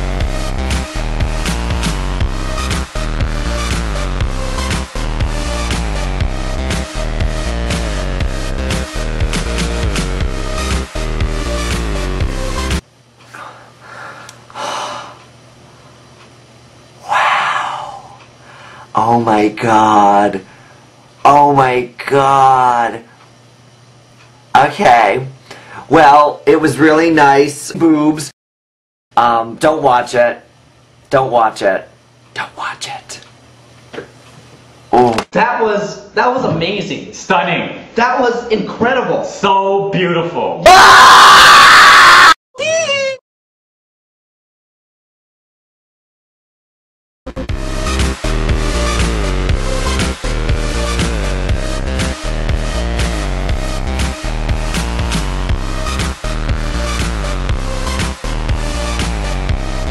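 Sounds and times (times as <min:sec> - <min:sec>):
man gasping: 0:13.3 - 0:15.2, 0:17.1 - 0:18.9, 0:25.4 - 0:25.9
man screaming: 0:40.6 - 0:43.2.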